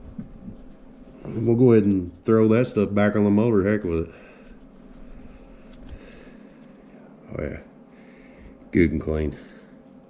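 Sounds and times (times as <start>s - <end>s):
cloth rubbing metal part: 0.0s - 3.2s, 4.4s - 6.0s.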